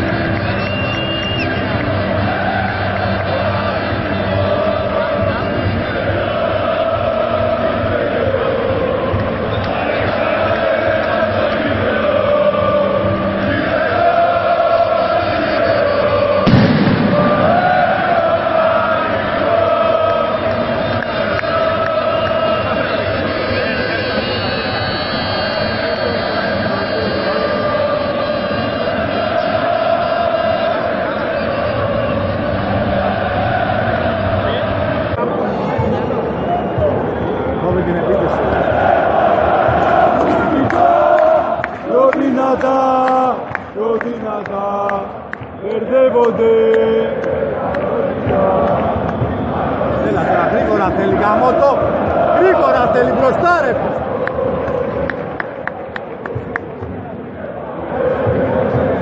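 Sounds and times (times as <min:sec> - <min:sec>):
stadium crowd chanting: 0:00.0 - 0:59.0
sharp bang: 0:16.5 - 0:17.9.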